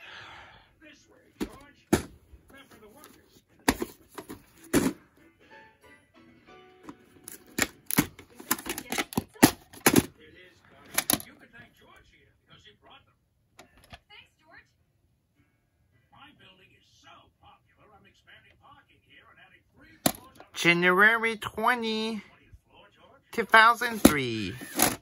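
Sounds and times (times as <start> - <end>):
plastic case clicking and knocking: 7.3 - 10.1, 10.9 - 11.3, 20.1 - 20.4, 23.9 - 25.0.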